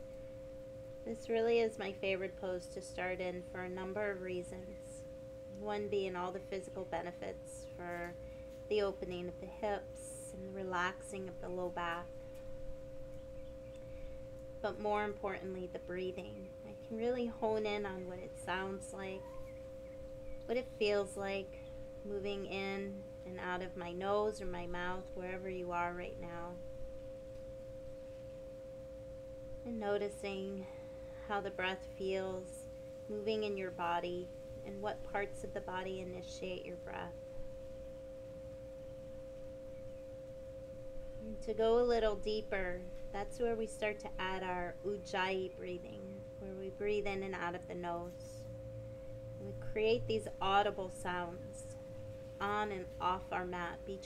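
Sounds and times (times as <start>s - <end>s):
faint low rumble: 0.0s - 54.0s
hum of two pure tones: 0.0s - 54.0s.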